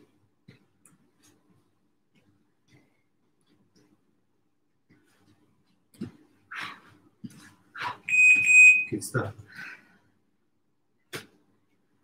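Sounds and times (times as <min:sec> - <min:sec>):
high electronic timer beep: 0:08.1 - 0:09.0
person breathing: 0:09.5 - 0:10.2.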